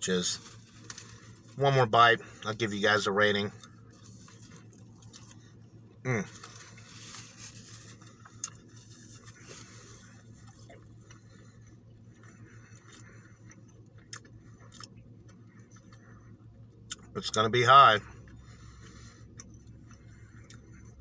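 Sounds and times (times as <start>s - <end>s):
person chewing food: 3.6s - 17.1s, 18.1s - 21.0s.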